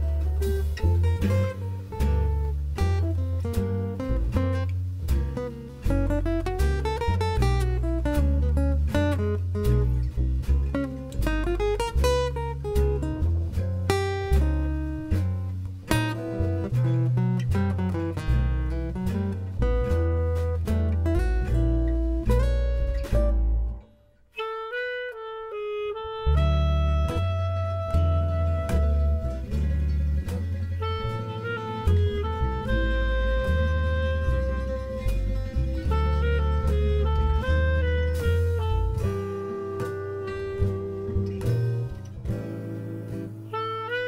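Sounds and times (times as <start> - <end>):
guitar lead: 0.0 - 44.0
jazz band playing: 0.0 - 44.0.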